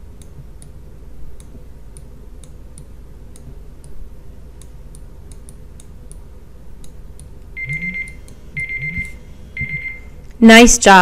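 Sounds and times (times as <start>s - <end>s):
timer ticking: 4.6s - 10.1s
alarm beeping: 7.6s - 10.2s.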